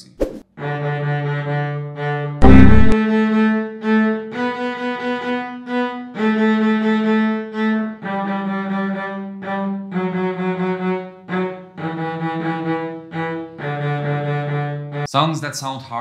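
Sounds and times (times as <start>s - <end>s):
solo bowed cello melody: 0.6s - 15.1s.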